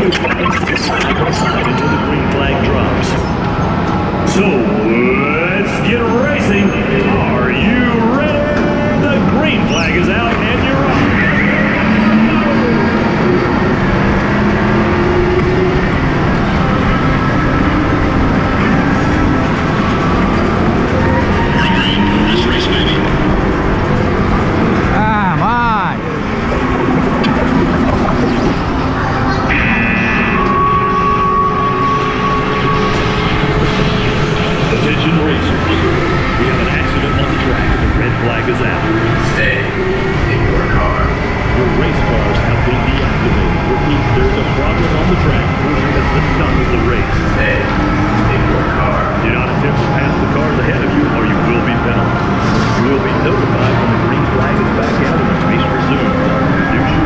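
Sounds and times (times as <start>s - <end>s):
steady high tone: 0.0s - 3.5s
karts rushing on track: 0.0s - 25.0s, 26.0s - 57.0s.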